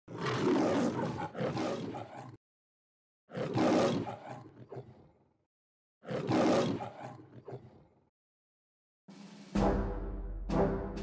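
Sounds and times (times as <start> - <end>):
lion roaring: 0.1 - 2.4, 3.3 - 5.1, 6.0 - 7.9.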